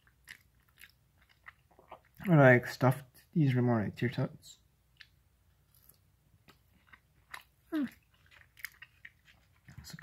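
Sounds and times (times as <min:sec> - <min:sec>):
person chewing: 0:00.0 - 0:02.3, 0:04.9 - 0:10.0.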